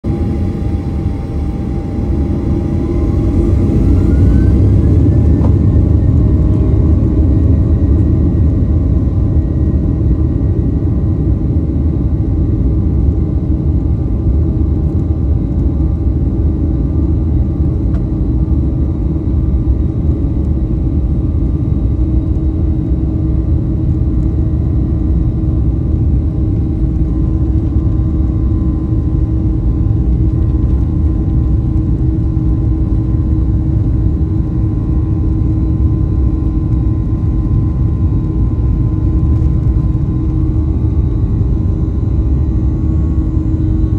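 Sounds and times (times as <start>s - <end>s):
jet engines spooling up: 0.1s - 8.3s.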